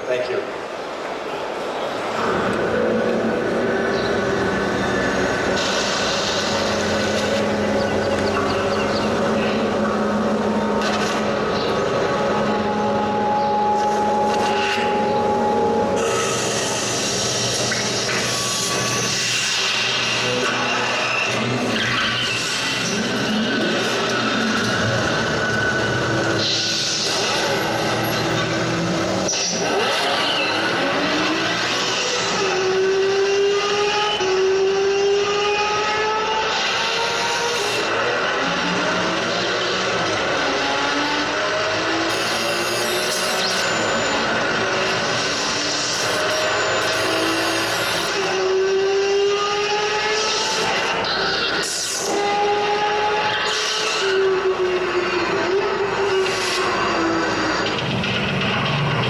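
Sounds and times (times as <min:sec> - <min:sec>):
sports car engine accelerating: 0:02.1 - 0:59.0.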